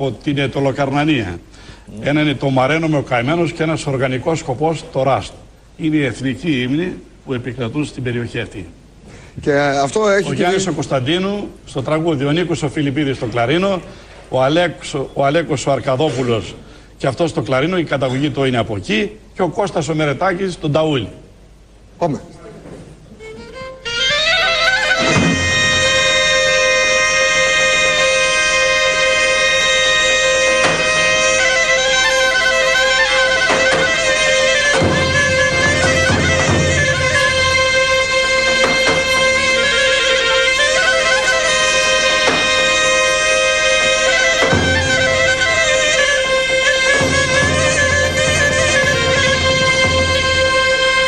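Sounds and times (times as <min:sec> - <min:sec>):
folk clarinets playing: 0:23.2 - 0:51.0
bass drum strikes: 0:33.3 - 0:40.1, 0:44.0 - 0:51.0.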